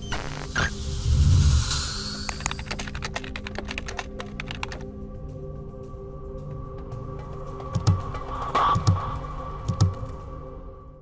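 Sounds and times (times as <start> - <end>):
soft background music: 0.0 - 11.0
keystroke clicks: 2.3 - 4.8.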